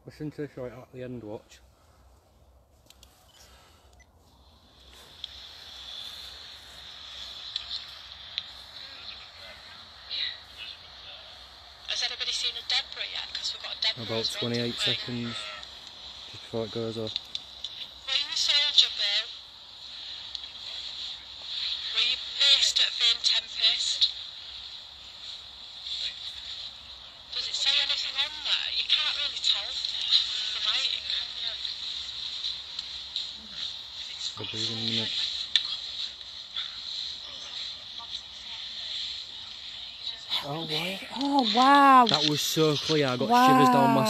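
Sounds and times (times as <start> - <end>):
tinny voices from small speaker: 43.3 - 44.0.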